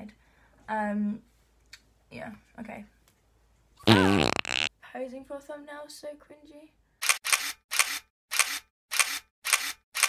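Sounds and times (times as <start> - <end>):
camera shutter clicking: 7.0 - 10.0.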